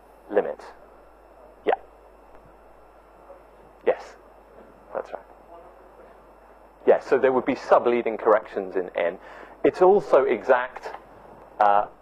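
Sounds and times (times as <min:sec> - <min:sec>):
lecture room hiss: 0:00.0 - 0:12.0.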